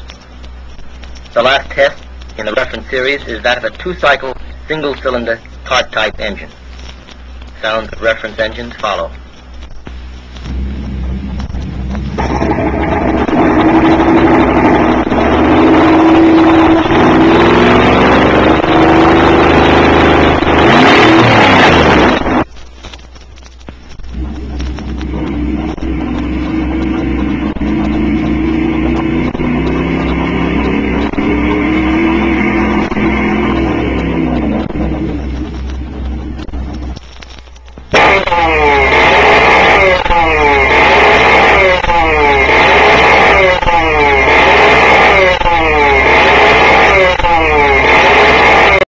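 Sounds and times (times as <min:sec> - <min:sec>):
muffled car engine revving: 0:00.0 - 0:22.5, 0:23.2 - 0:48.9
kart engine: 0:10.4 - 0:22.5, 0:24.1 - 0:37.0, 0:37.9 - 0:48.9
loud car engine revving: 0:10.4 - 0:22.5, 0:24.1 - 0:37.0, 0:37.9 - 0:48.9.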